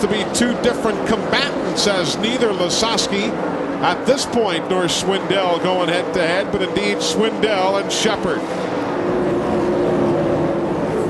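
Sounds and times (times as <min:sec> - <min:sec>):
race car engine high-revving: 0:00.0 - 0:11.0.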